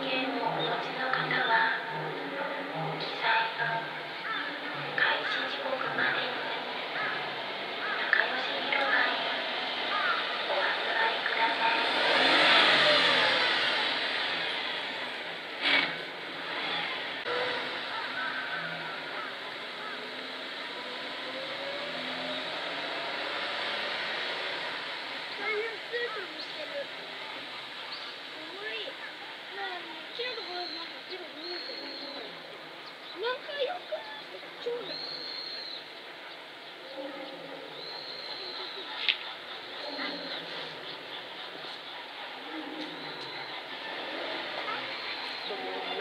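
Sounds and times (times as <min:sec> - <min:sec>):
steady outdoor hiss: 0:00.0 - 0:46.0
vehicle passing by: 0:00.0 - 0:46.0
birds calling: 0:03.1 - 0:15.3, 0:16.3 - 0:46.0.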